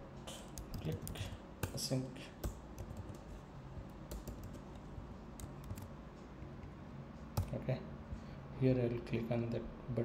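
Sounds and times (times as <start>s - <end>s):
low steady hum: 0.0s - 10.0s
keyboard typing: 2.4s - 3.3s, 4.1s - 4.8s, 5.4s - 5.9s.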